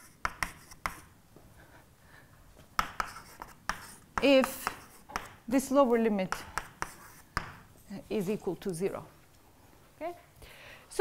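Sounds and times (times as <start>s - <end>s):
chalk scratching on blackboard: 0.0s - 1.1s, 2.8s - 5.4s, 6.3s - 7.5s
chalk tapping on blackboard: 0.0s - 1.1s, 2.8s - 5.4s, 6.3s - 7.6s.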